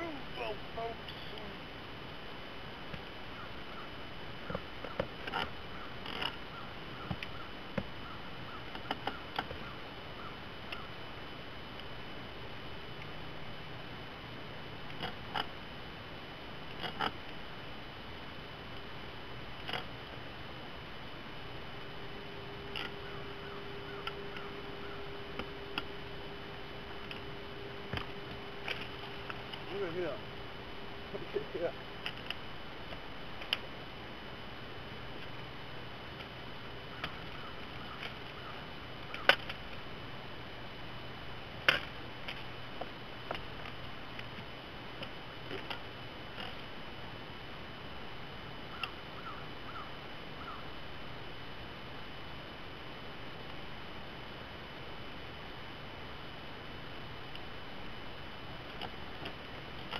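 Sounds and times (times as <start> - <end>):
faint hum: 0.0 - 59.9
low steady tone: 0.0 - 59.9.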